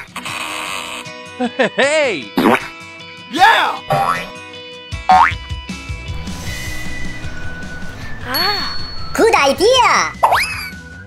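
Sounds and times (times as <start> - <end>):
background music with steady beat: 1.2 - 11.0.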